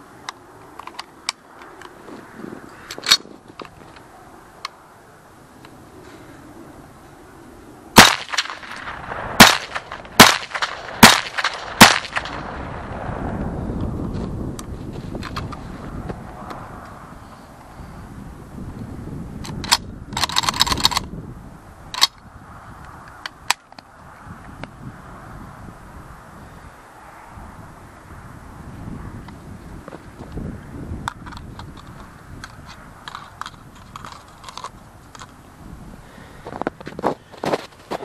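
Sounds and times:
rifle shots: 8.0 - 13.0.

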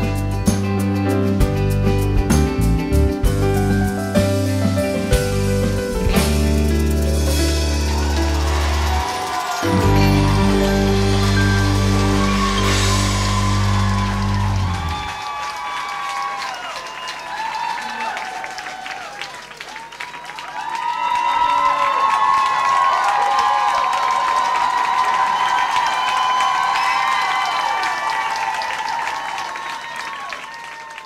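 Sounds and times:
audience applauding and cheering: 4.0 - 31.0.

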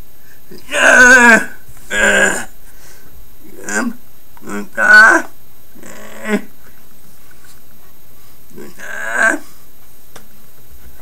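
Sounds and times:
man crying out: 0.6 - 2.5.

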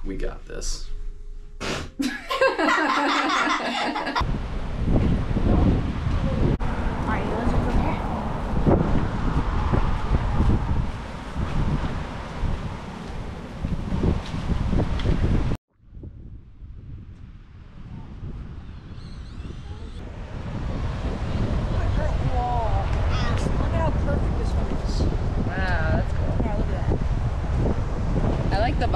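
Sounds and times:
open beach ambience: 2.4 - 28.9
wind buffeting microphone: 3.4 - 28.9.

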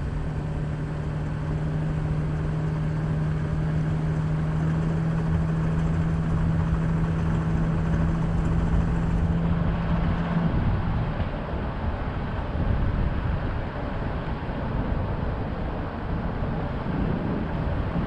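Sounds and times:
vehicle engine and tyre noise: 0.0 - 18.0.

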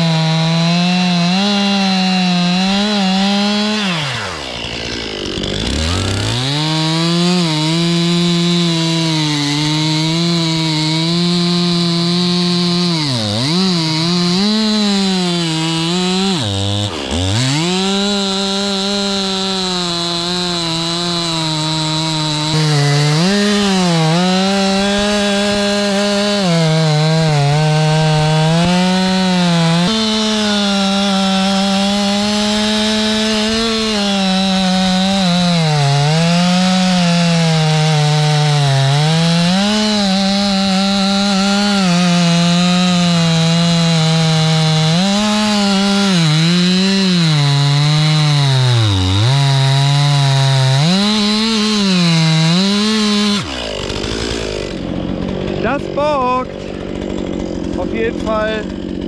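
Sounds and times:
chainsaw cutting wood: 0.0 - 59.0.

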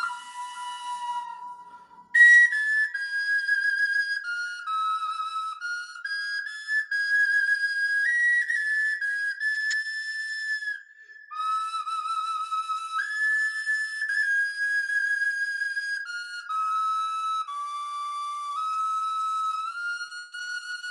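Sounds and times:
breathy flute melody: 0.0 - 20.9.

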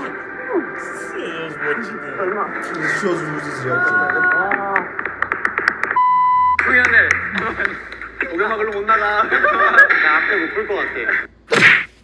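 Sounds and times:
voices: 0.0 - 5.0
electronic bleep: 6.0 - 6.8.

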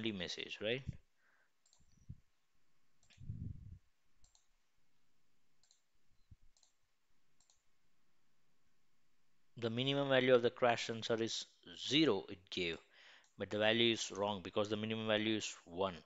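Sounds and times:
computer mouse clicks: 1.6 - 2.0, 3.0 - 3.2, 4.2 - 4.5, 5.6 - 5.9, 6.5 - 6.8, 7.4 - 7.7.

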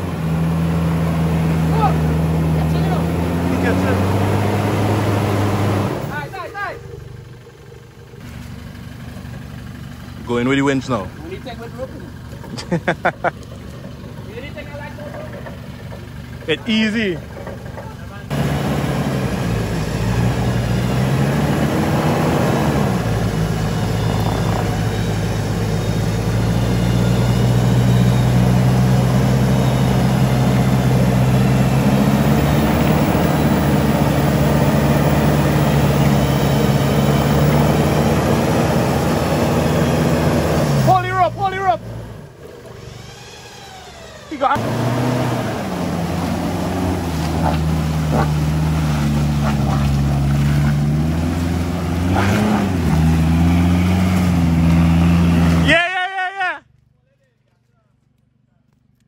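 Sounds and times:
pickup truck engine under load: 0.0 - 55.7.

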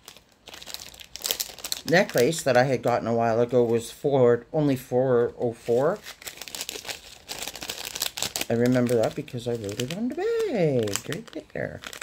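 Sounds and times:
plastic bag crinkling: 0.0 - 3.9, 5.4 - 12.0
person speaking: 1.8 - 6.2, 8.4 - 12.0.

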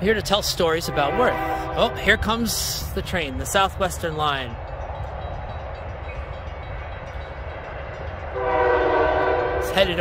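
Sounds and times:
diesel train rumbling: 0.0 - 10.0.

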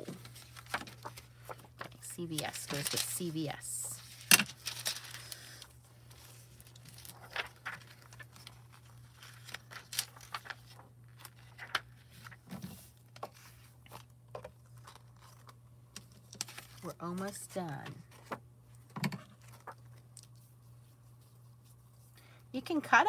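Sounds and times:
foil crinkling: 0.2 - 12.3.

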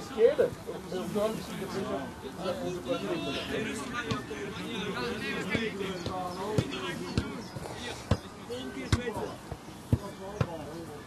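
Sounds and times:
faint voices: 0.0 - 11.0.

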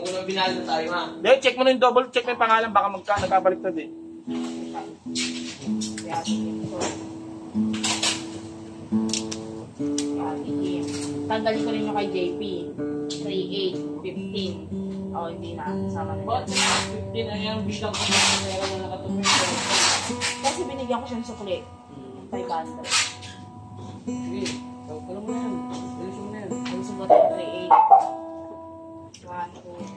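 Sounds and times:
acoustic guitar notes plucked: 0.0 - 29.9.

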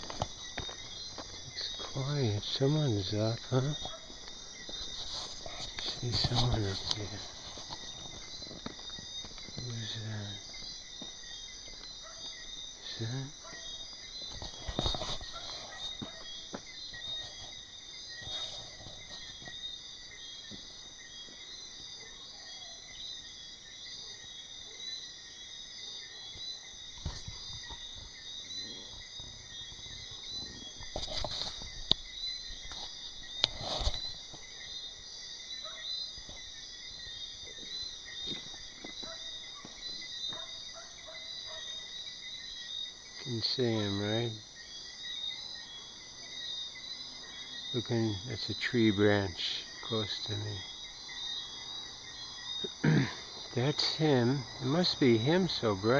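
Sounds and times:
night insects trilling: 0.0 - 55.9.

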